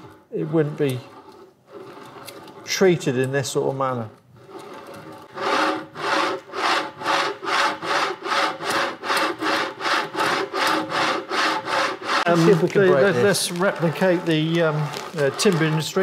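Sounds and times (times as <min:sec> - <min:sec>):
carriage wheels grinding on gritty track: 0:00.0 - 0:08.0, 0:08.6 - 0:16.0.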